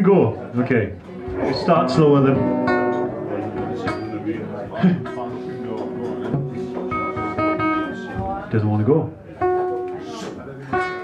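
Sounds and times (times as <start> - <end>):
pub crowd voices: 0.0 - 11.0
acoustic guitar picked and strummed: 1.1 - 8.7, 10.7 - 11.0.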